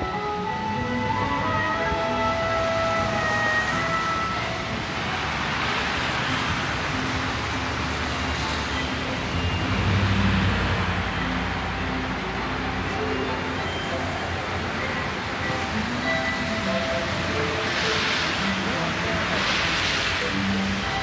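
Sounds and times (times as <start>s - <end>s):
held musical notes: 0.0s - 7.7s, 8.5s - 21.0s
heavy vehicle engine rumble: 0.0s - 21.0s
vehicle passing with hiss: 0.2s - 21.0s.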